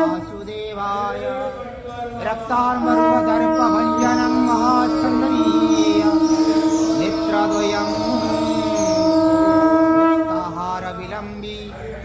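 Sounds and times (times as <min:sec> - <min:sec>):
conch shell blown: 0:00.0 - 0:00.4, 0:02.7 - 0:11.0.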